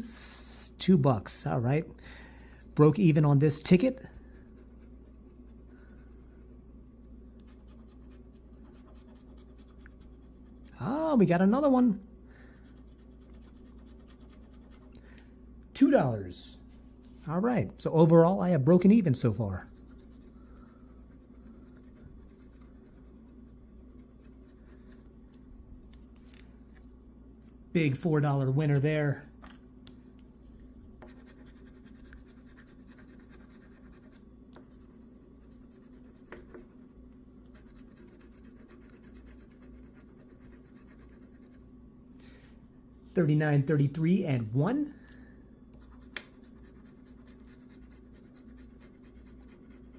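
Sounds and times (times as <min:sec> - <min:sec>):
scratching lottery ticket: 0:02.6 - 0:10.9, 0:12.7 - 0:14.9, 0:19.7 - 0:25.4, 0:31.1 - 0:36.9, 0:37.5 - 0:41.6, 0:45.8 - 0:49.9
scratching scratch-off ticket: 0:31.1 - 0:36.9, 0:45.8 - 0:49.9.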